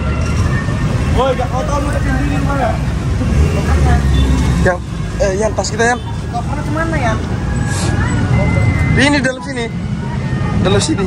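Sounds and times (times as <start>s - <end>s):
faint voices: 0.0s - 11.0s
vehicle engine rumble: 0.0s - 11.0s.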